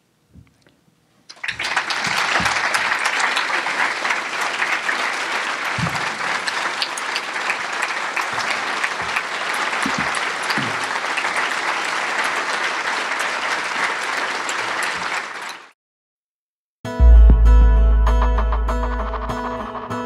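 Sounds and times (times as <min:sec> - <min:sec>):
audience applauding: 0:01.3 - 0:15.8.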